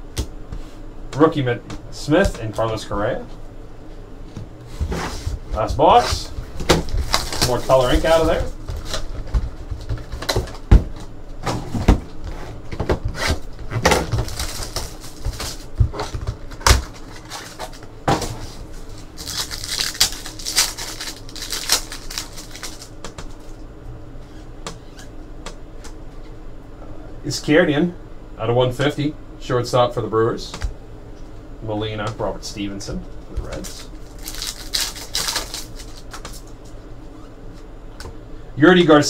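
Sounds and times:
foil wrapper crinkling: 0:06.7 - 0:10.4, 0:13.4 - 0:23.6, 0:33.5 - 0:36.6
cards being handled: 0:14.2 - 0:23.6, 0:33.4 - 0:36.8.

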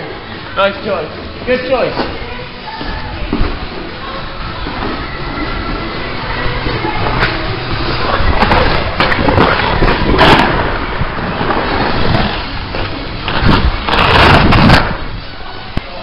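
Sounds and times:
ice skates scraping on ice: 0:07.1 - 0:15.1.

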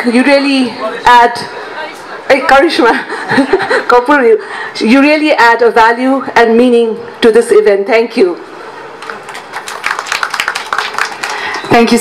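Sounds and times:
audience applauding: 0:09.0 - 0:11.8.

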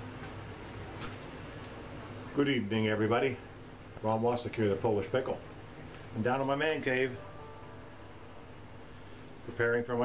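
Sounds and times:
high-pitched two-tone whine: 0:03.2 - 0:10.0.

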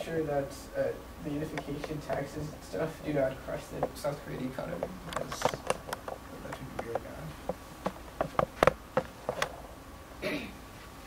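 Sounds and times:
sharp clicks or taps: 0:04.8 - 0:09.5.

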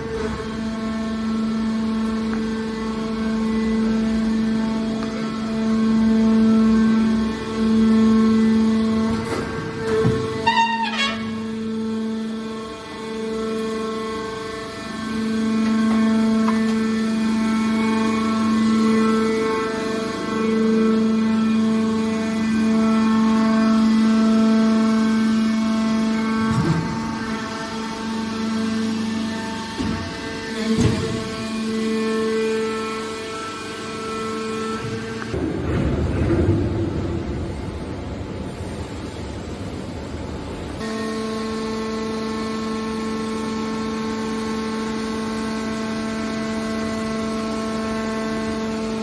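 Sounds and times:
hydraulic motor and pump humming: 0:00.0 - 0:49.0
rough noisy machine sound: 0:00.0 - 0:49.0.

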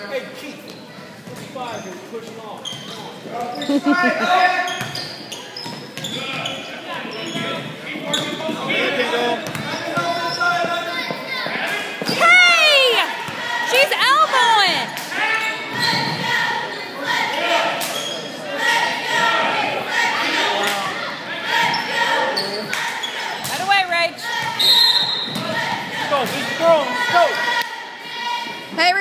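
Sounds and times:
people shouting: 0:11.6 - 0:15.4, 0:24.2 - 0:28.6.

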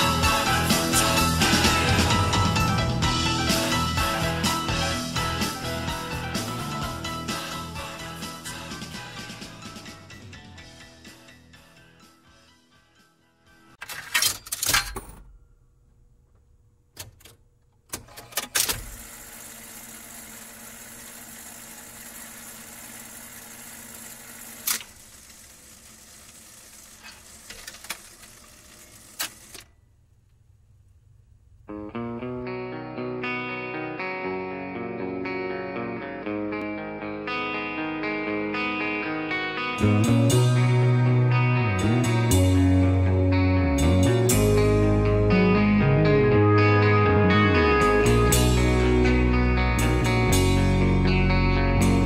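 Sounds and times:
mechanical clunks and clicks: 0:13.8 - 0:15.4, 0:16.3 - 0:18.9
clean guitar arpeggio: 0:31.7 - 0:52.0.

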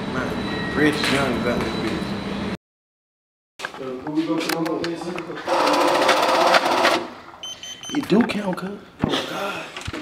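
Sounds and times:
banknote counting machine rattling: 0:05.5 - 0:07.1.

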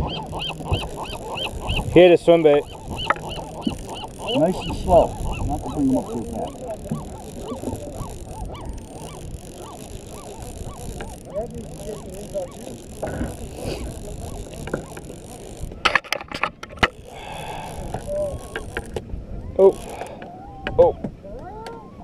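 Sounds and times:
seabirds honking calls: 0:00.0 - 0:16.0, 0:16.6 - 0:22.0.

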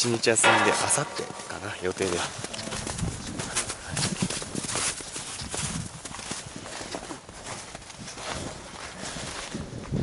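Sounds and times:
footsteps crunching in snow: 0:00.0 - 0:10.0.

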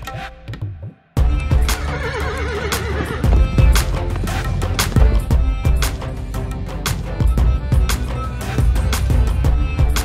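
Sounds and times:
background music with beat: 0:00.0 - 0:10.0
horse whinnying: 0:01.6 - 0:03.8.

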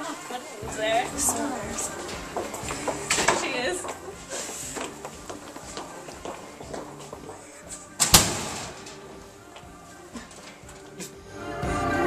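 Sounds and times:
background music: 0:00.0 - 0:12.0
door slamming: 0:07.9 - 0:09.4.

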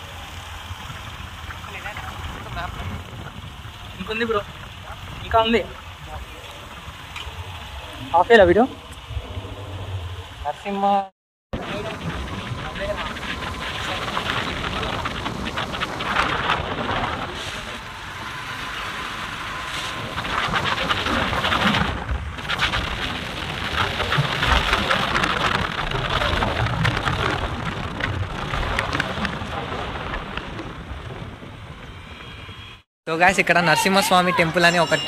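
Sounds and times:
road noise: 0:00.0 - 0:35.0
wind buffeting microphone: 0:00.7 - 0:10.7, 0:11.6 - 0:32.8.

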